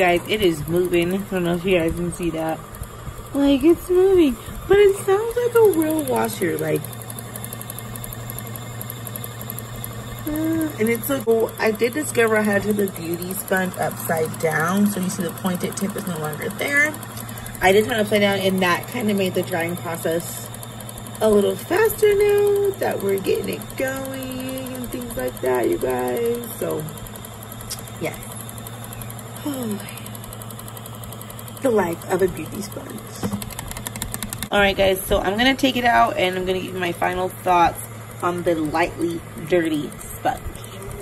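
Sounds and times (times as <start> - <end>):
toy washing machine humming: 0.0 - 41.0.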